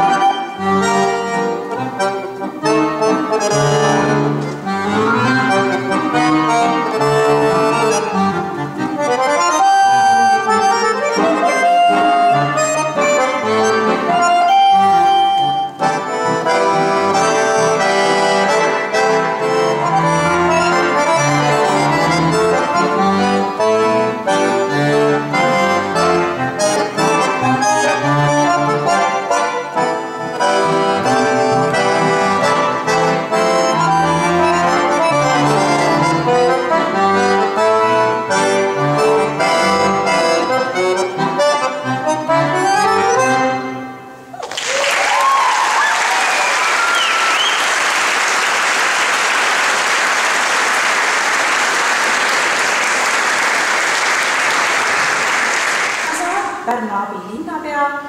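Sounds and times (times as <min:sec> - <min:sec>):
piano accordion melody: 0:00.0 - 0:44.3, 0:46.8 - 0:56.8.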